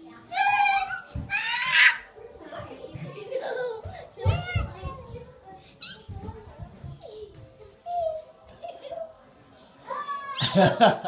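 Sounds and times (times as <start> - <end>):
girls giggling: 10.4 - 11.0.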